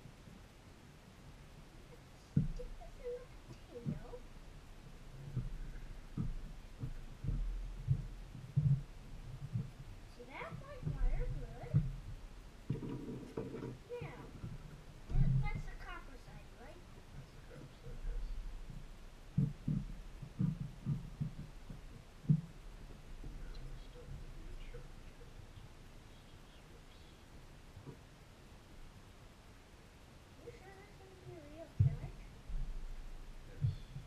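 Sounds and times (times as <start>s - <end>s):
faint low hum: 0.0s - 34.0s
dull low thumps: 1.3s - 29.2s, 30.5s - 34.0s
low rumble: 1.7s - 27.8s.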